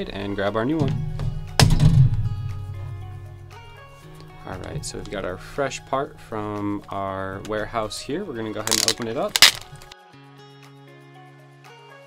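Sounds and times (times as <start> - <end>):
background music with sustained notes: 0.0 - 12.0.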